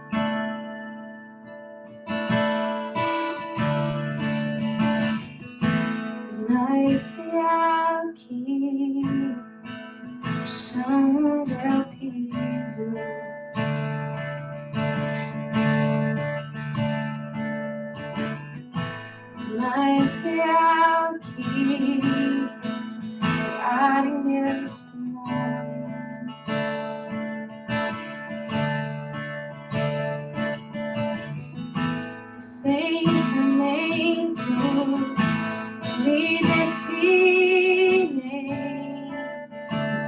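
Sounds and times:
acoustic guitar strumming: 0.0 - 40.0
woman singing worship song: 6.3 - 9.4, 10.5 - 13.2, 19.4 - 22.6, 23.4 - 26.3, 32.4 - 39.2.

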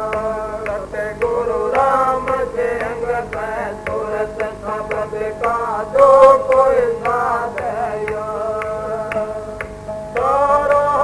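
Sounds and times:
person singing a hymn: 0.0 - 11.0
regular percussive stroke: 0.1 - 11.0.

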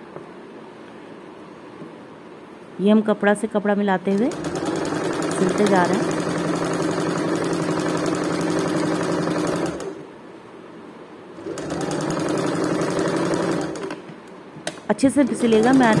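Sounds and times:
sewing machine running: 4.1 - 10.0, 11.4 - 14.0, 15.2 - 16.0.

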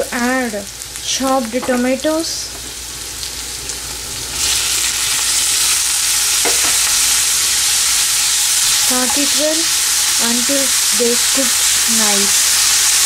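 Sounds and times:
vegetables sizzling in hot oil: 0.0 - 13.0.

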